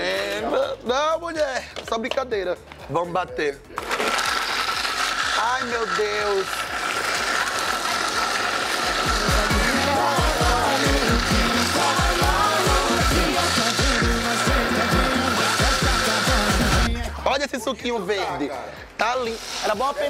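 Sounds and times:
upbeat music with steady beat: 0.0 - 20.0
blender motor whine: 3.8 - 16.9.

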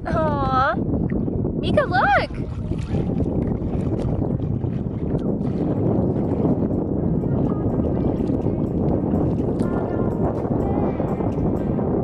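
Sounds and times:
seawater lapping and sloshing: 0.0 - 11.8
wind on microphone: 0.0 - 12.0.

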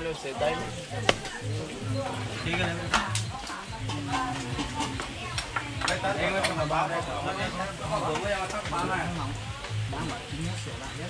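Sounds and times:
voices chatting: 0.0 - 11.0
cleaver chopping: 1.1 - 1.3.

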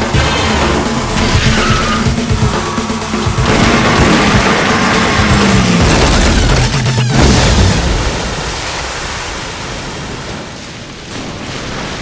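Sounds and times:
car racing: 0.0 - 7.3
tyres skidding: 0.0 - 8.4
dramatic film score: 0.0 - 12.0.

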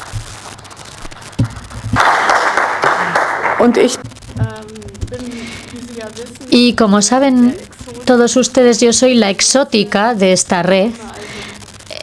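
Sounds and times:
audience applause: 2.0 - 4.0.

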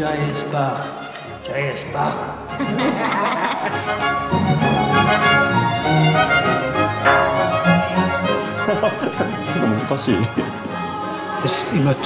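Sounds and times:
orchestral music with strings: 0.0 - 12.0.

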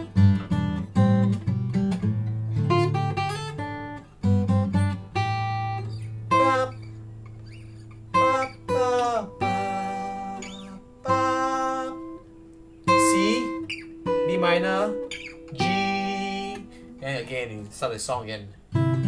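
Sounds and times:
acoustic guitar picking: 0.0 - 19.0.

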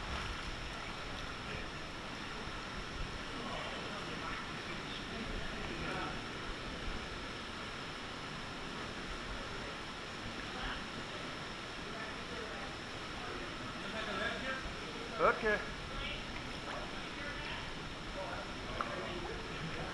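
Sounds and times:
faint indistinct voices: 0.0 - 19.9
water rushing in a gorge: 0.0 - 19.9.

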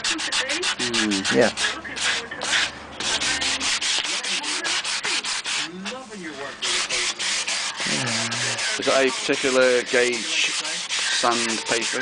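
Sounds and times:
sandpaper sanding wood: 0.0 - 5.7, 6.6 - 12.0.

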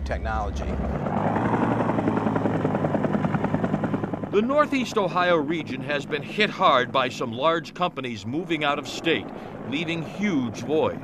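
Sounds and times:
helicopter rotor beating: 0.0 - 11.0.

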